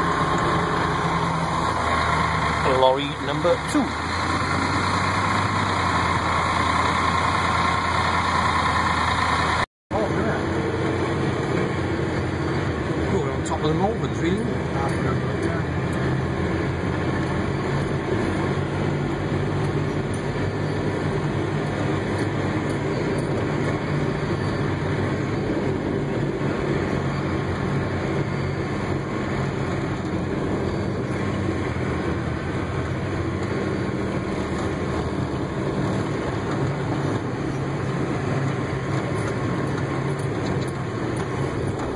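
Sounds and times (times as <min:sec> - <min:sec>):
tractor diesel engine running: 0:00.0 - 0:41.9.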